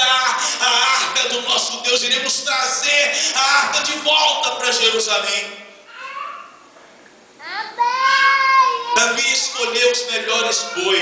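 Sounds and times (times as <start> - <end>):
person speaking: 0.0 - 5.8, 8.1 - 11.0.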